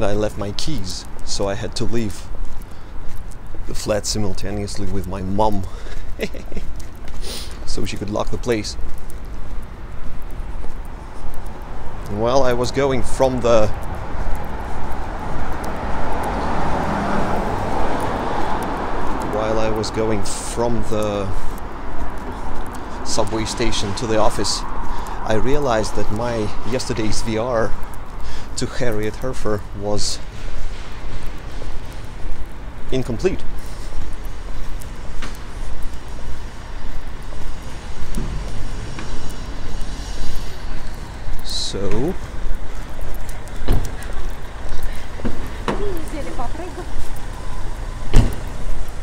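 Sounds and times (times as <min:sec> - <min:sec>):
city street traffic rush: 0:00.0 - 0:49.0.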